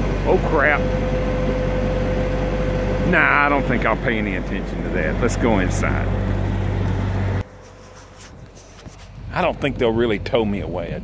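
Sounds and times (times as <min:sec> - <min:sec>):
low engine drone: 0:00.0 - 0:11.0.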